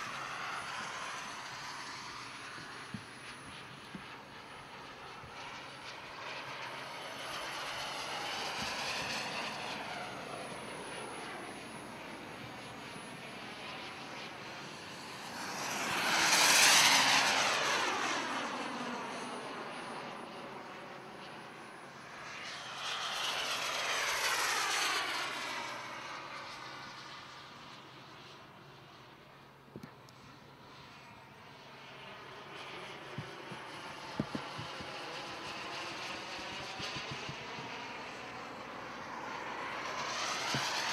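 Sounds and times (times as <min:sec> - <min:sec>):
model jet turbine fly-by: 0:00.0 - 0:40.9.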